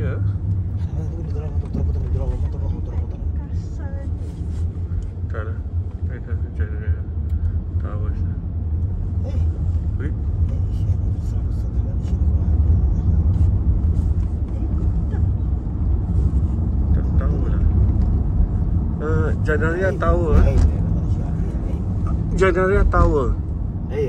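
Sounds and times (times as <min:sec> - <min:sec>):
car cabin road and engine rumble: 0:00.0 - 0:24.0.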